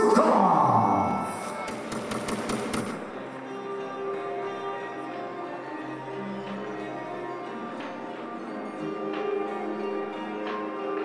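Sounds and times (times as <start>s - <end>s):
faint background music: 0.0s - 11.0s
glitchy sharp clicks: 1.4s - 3.1s.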